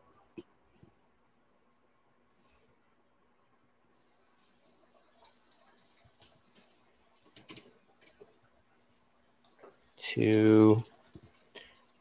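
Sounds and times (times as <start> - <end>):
chicken frying in hot oil: 3.9 - 12.0.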